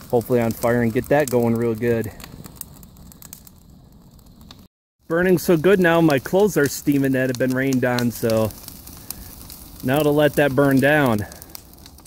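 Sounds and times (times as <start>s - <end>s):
fire crackling and popping: 0.0s - 12.0s.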